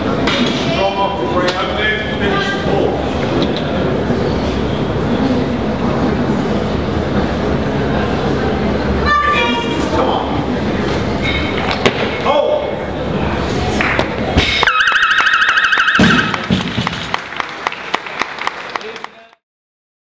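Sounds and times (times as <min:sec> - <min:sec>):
crowd voices: 0:00.0 - 0:19.3
warbling electronic signal tone: 0:14.6 - 0:16.4
scattered clapping: 0:14.9 - 0:19.4.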